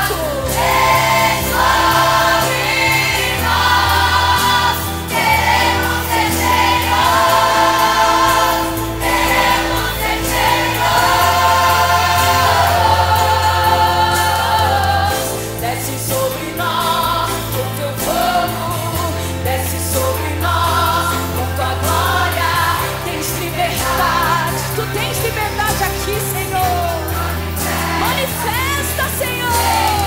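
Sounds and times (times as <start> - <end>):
bass line: 0.0 - 30.0
choir singing a hymn: 0.0 - 30.0
orchestral accompaniment: 0.0 - 30.0.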